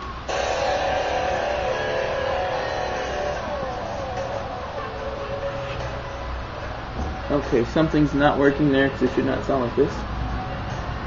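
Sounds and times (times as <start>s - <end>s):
steady layered tone from speakers: 0.0s - 11.0s.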